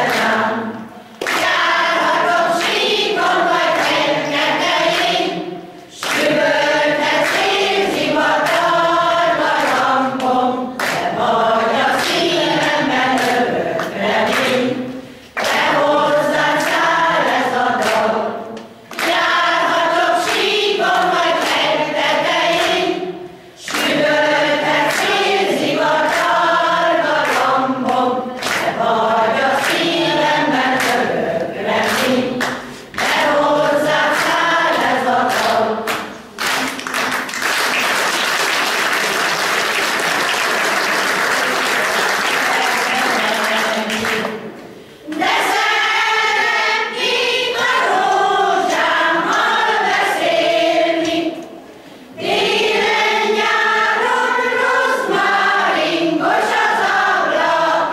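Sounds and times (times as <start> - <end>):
folk choir singing: 0.0 - 36.7, 41.4 - 57.9
audience applauding: 34.0 - 44.4.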